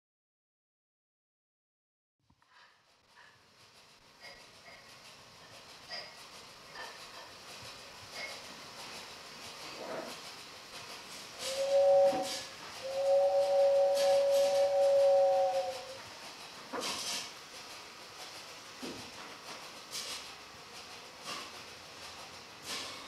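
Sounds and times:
steam hissing: 2.5 - 23.0
steam train whistle: 11.4 - 16.1.

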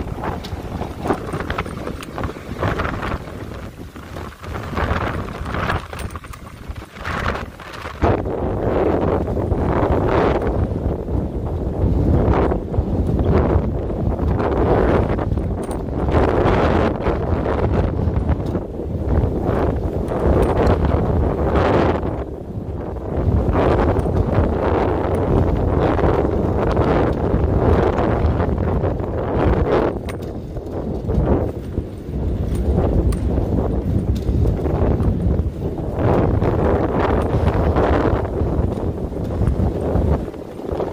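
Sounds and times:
storm wind buffeting microphone: 0.0 - 40.9.

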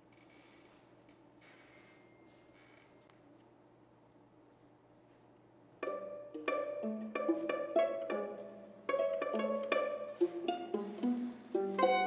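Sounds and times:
string quartet playing short notes: 5.8 - 12.0.

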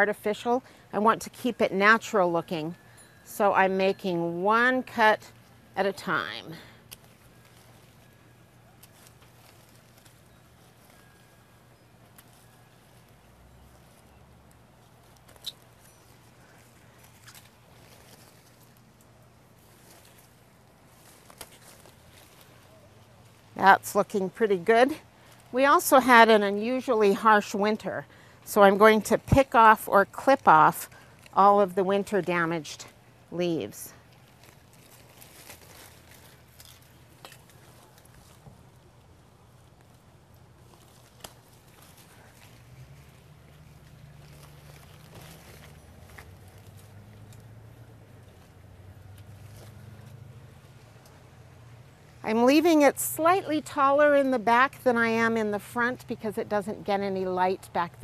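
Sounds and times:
faint rustling of leaves: 0.0 - 58.0
pruning shears snipping stems: 21.0 - 22.7, 40.7 - 47.6.

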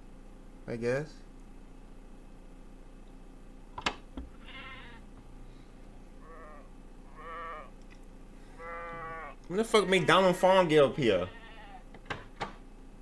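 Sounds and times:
sheep bleating: 4.4 - 5.1, 6.2 - 7.8, 8.5 - 11.9.

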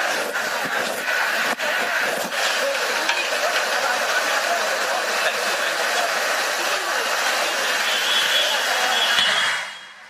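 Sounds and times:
crowd talking indistinctly: 0.0 - 10.0.

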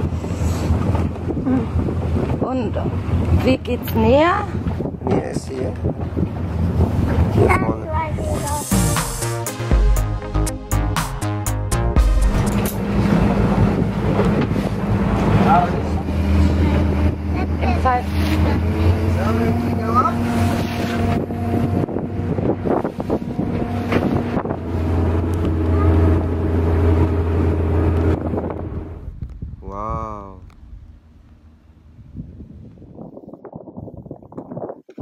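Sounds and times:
wind buffeting microphone: 0.0 - 8.7, 12.6 - 35.0
boat engine running: 0.0 - 32.6
intro music: 8.2 - 13.6.

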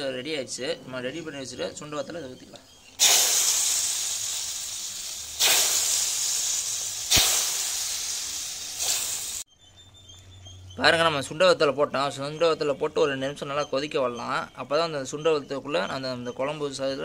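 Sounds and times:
hot oil sizzling in gravy: 3.0 - 9.5.

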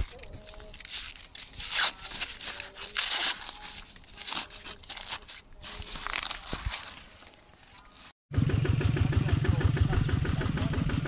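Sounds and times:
small tractor engine chugging: 8.3 - 11.0.

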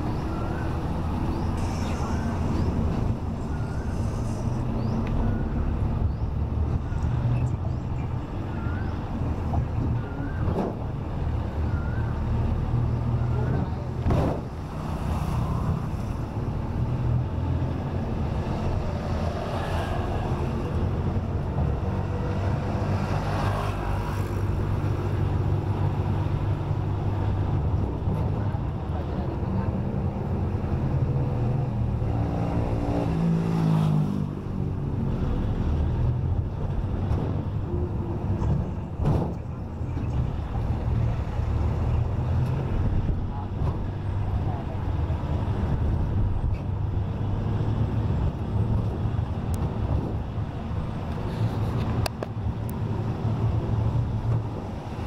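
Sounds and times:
vehicle engine and road noise: 0.0 - 55.0.

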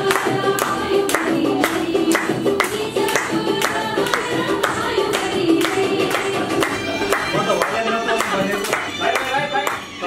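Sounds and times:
hands clapping to a beat: 0.0 - 10.0
song with singing voices: 0.0 - 10.0.

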